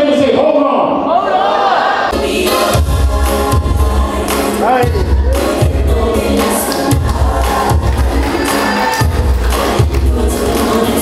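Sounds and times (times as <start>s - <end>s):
choir singing gospel song: 1.0s - 11.0s.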